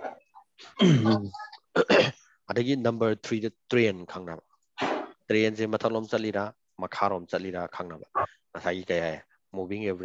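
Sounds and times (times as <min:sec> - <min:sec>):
man clearing his throat: 0:00.8 - 0:01.2, 0:01.8 - 0:02.3
man talking: 0:02.5 - 0:04.5, 0:05.3 - 0:10.0.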